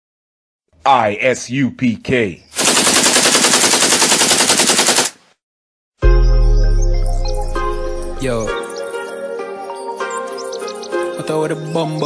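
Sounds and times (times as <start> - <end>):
automatic gunfire: 2.6 - 5.2.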